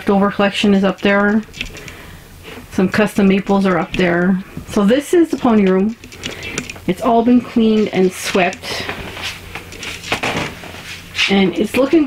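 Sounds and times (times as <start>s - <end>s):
soft rustling: 0.6s - 12.0s.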